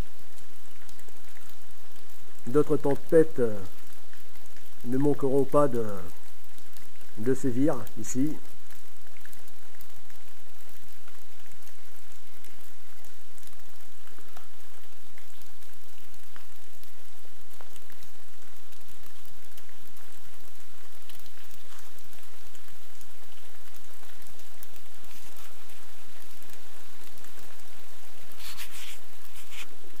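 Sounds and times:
steady rain falling: 0:00.0 - 0:30.0.

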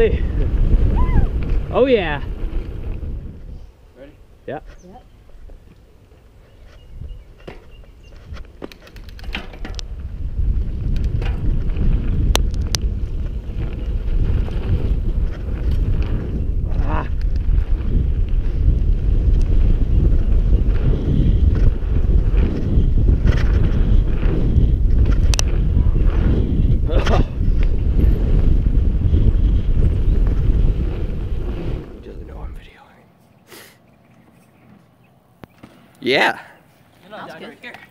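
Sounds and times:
wind rushing over microphone: 0:00.0 - 0:33.0
bike clicks and knocks: 0:06.6 - 0:10.1, 0:10.8 - 0:16.2.

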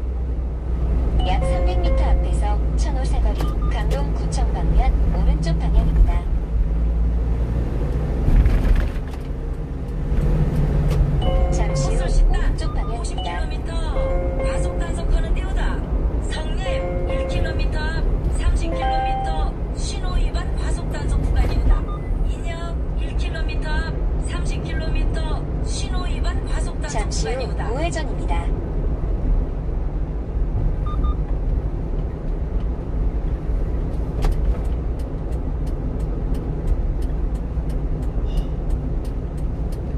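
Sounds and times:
engine and road rumble: 0:00.0 - 0:39.9.

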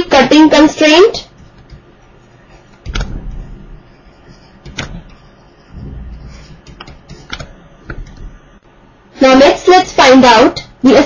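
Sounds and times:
low rumble: 0:05.6 - 0:06.5
stylus tapping on pen tablet: 0:06.3 - 0:08.3.

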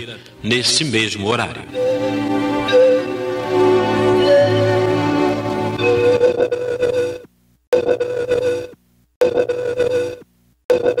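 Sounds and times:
pulsing tone: 0:01.8 - 0:07.2.

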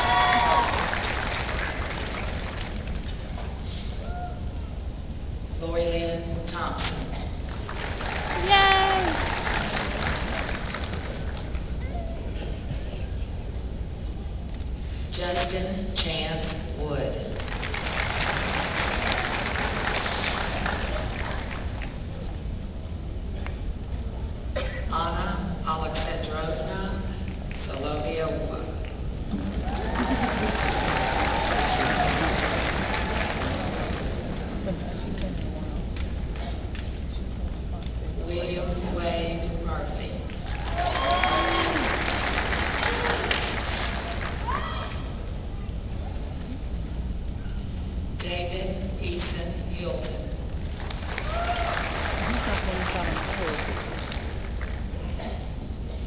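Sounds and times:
audience applauding: 0:00.0 - 0:03.4, 0:07.5 - 0:11.8, 0:17.4 - 0:22.3, 0:29.3 - 0:35.5, 0:40.4 - 0:44.6, 0:50.6 - 0:55.1.

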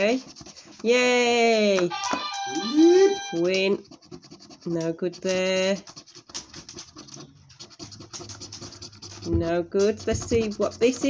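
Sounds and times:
coin scratching scratchcard: 0:00.0 - 0:01.2, 0:01.9 - 0:11.0.

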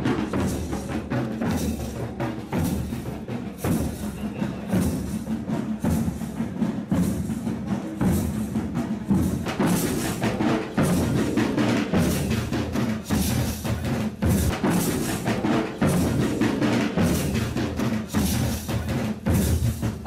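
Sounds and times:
marching band drums: 0:00.0 - 0:20.0.

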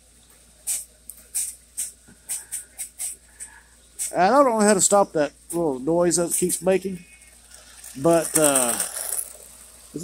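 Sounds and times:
toy train running: 0:00.7 - 0:10.0.

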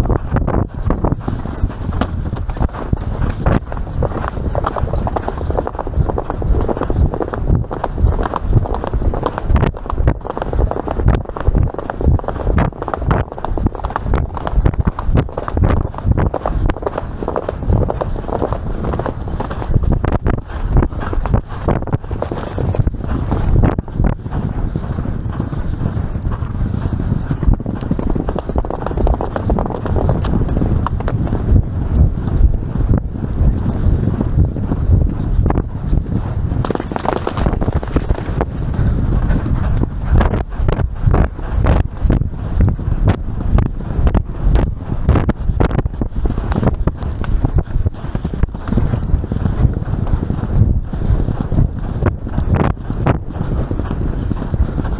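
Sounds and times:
horse hoofbeats galloping: 0:00.0 - 0:54.9.

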